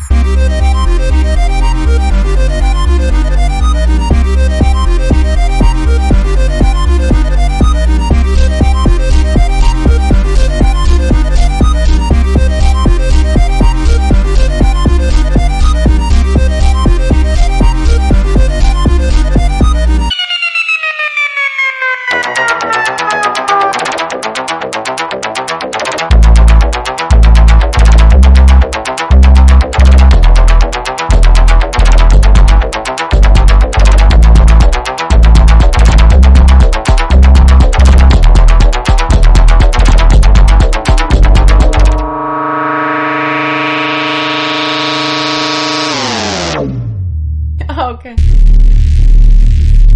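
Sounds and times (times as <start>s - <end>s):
pulsing synthesizer tone: 0.0s - 24.5s, 41.3s - 47.1s
electronic dub music: 0.0s - 49.9s.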